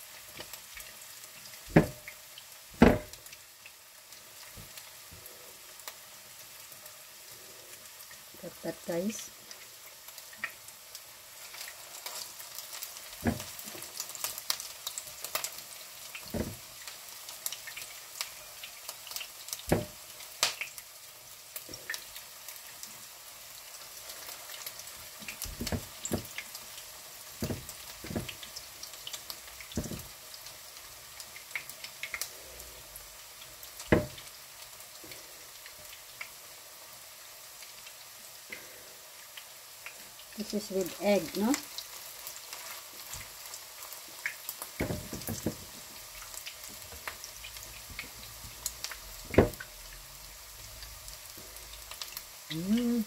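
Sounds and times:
patties sizzling in hot oil: 0.0 - 53.0
dull knocks: 1.7 - 2.1, 2.8 - 3.2, 13.2 - 13.5, 16.3 - 16.6, 19.7 - 19.9, 25.5 - 26.3, 27.4 - 28.4, 29.8 - 30.1, 33.9 - 34.2, 44.8 - 45.7, 49.3 - 49.6.

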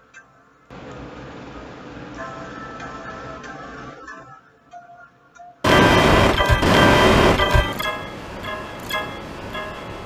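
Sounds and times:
bright electronic notes: 5.6 - 10.0
distorted wash of sound: 5.7 - 9.6.

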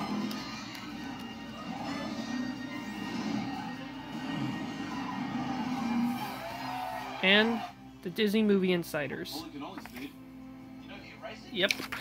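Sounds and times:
film music on television: 0.0 - 12.0.

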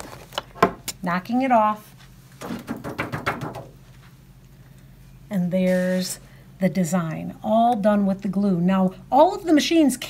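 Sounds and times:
plastic mat being tapped: 2.4 - 3.8.

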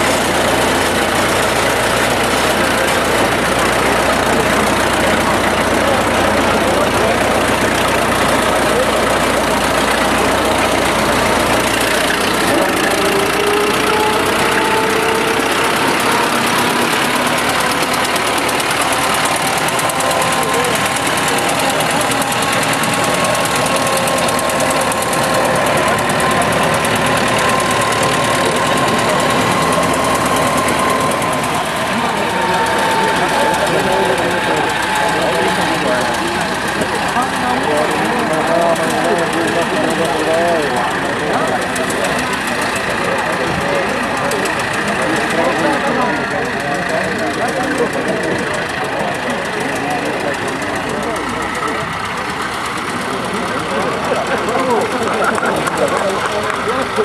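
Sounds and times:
people chattering: 0.0 - 57.0
tractor engine running: 0.0 - 57.0.

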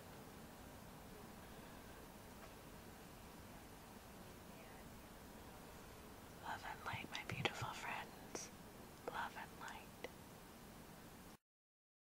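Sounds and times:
woman whispering: 6.4 - 8.5, 9.1 - 10.1.

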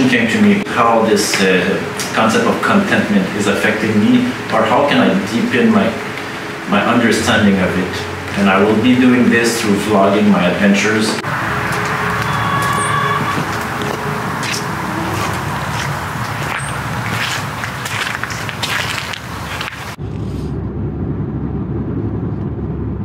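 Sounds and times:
rain pattering on truck canopy: 0.1 - 9.9, 11.0 - 20.0
car road rumble inside cabin: 0.2 - 23.0.

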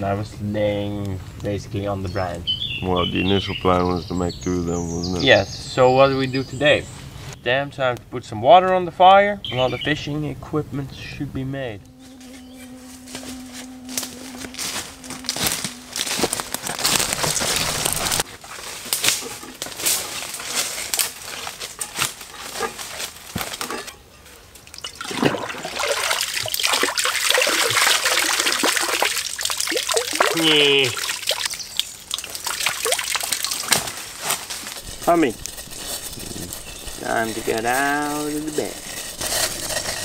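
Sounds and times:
water sloshing and trickling: 24.5 - 40.0.

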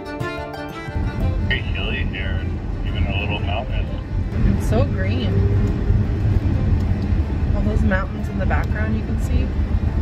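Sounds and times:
fiddle music: 0.0 - 10.0
car driving on highway rumble: 0.8 - 10.0
people talking: 1.5 - 5.4, 7.5 - 9.5.

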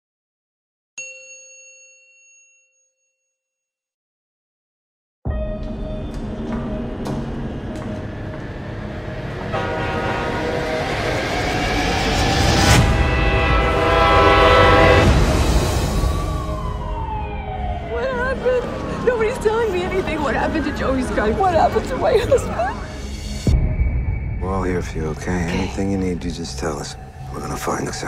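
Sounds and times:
chime ding: 1.0 - 3.4
train rumbling: 5.6 - 23.5
train horn chord: 8.9 - 16.2.

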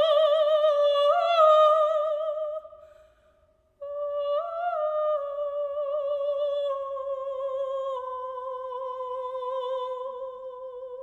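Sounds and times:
woman singing opera: 0.0 - 2.9, 3.8 - 11.0.

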